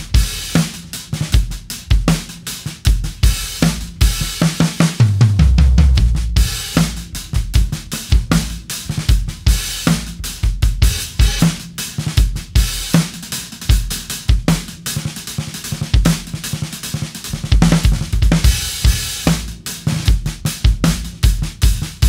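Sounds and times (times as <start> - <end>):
drum kit groove: 0.0 - 22.0.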